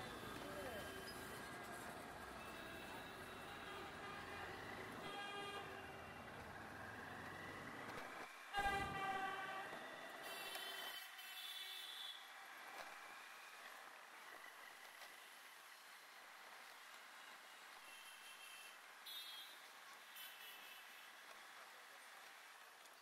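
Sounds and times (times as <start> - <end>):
vehicle horns honking: 8.5 - 12.2, 17.9 - 19.6.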